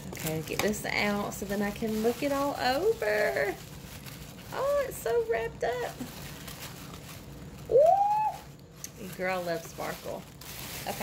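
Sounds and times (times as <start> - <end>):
woman saying ooh: 7.7 - 8.4.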